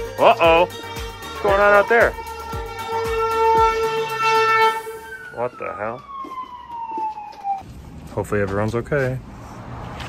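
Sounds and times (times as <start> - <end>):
siren wailing down in pitch: 0.6 - 7.6.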